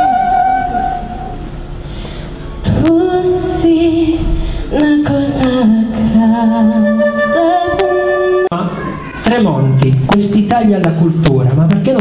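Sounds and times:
solo flute melody: 0.0s - 1.5s, 6.5s - 8.6s.

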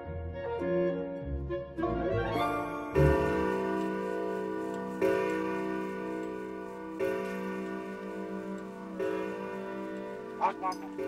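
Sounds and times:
grandfather clock bell striking: 3.0s - 11.0s.

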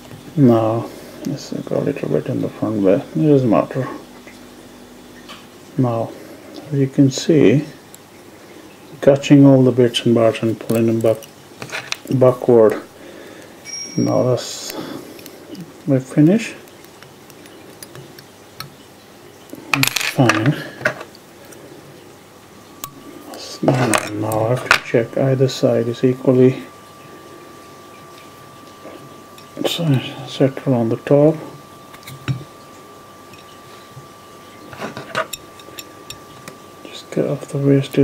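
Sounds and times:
faint steady hum: 0.0s - 38.0s.

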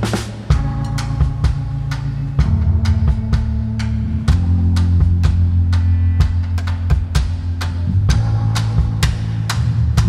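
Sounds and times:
drum kit beat: 0.0s - 10.0s
low held bass notes: 0.0s - 10.0s.

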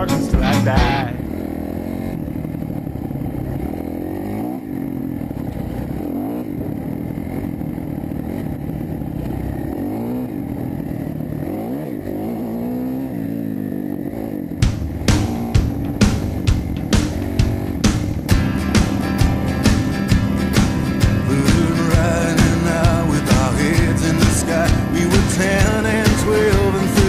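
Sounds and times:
music with drum beat: 0.0s - 1.2s, 14.6s - 27.0s
dirt bike engine revving: 0.0s - 27.0s.

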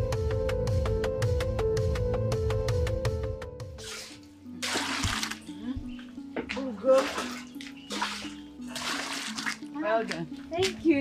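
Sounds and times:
background music with low notes: 0.0s - 11.0s
water splashing from a bowl: 4.6s - 5.6s, 6.8s - 10.8s.

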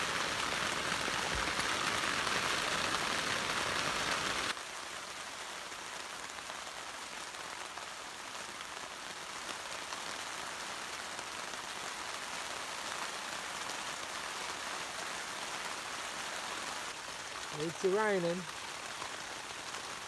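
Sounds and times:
heavy rain falling: 0.0s - 20.0s.

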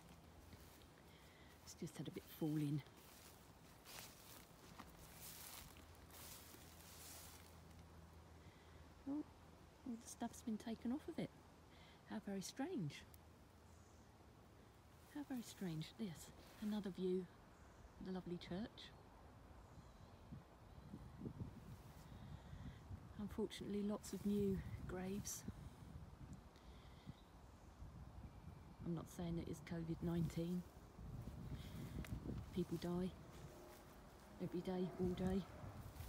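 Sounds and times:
soft rustles: 0.0s - 7.9s, 30.2s - 36.0s
soft low rumbles: 28.0s - 36.0s.

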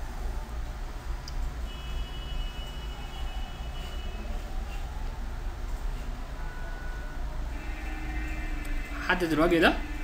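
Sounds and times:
room and microphone hum and hiss: 0.0s - 10.0s
thin high whine: 7.5s - 10.0s.

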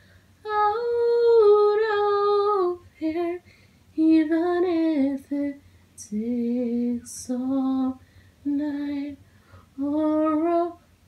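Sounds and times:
woman singing wordless melody: 0.4s - 11.0s.

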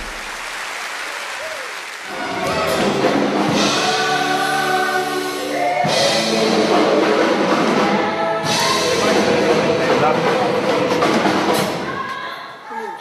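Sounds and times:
live band music: 1.4s - 12.0s.

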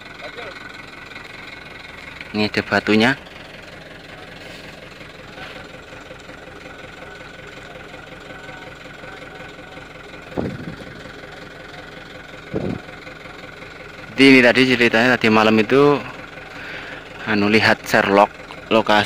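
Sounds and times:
diesel truck engine idling: 0.0s - 19.0s.

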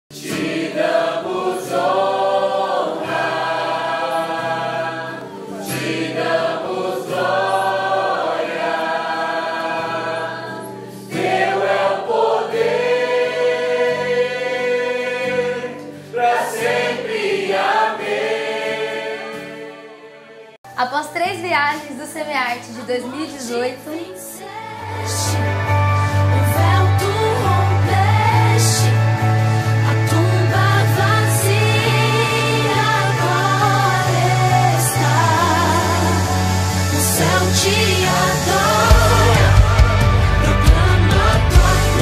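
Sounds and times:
choir singing long held notes: 0.1s - 20.6s, 24.4s - 42.0s.

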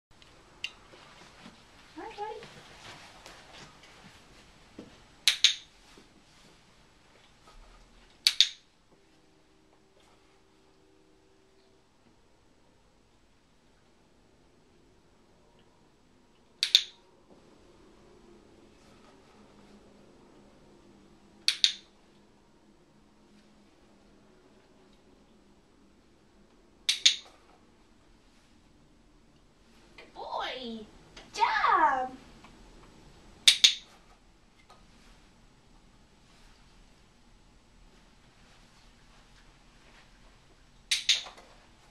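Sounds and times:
dog-training clicker clicks: 16.6s - 17.0s, 21.5s - 21.8s.

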